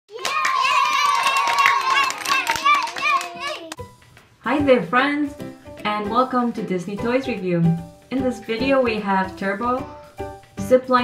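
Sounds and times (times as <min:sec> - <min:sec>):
children cheering and shouting: 0:00.1 - 0:03.8
clapping: 0:00.1 - 0:03.8.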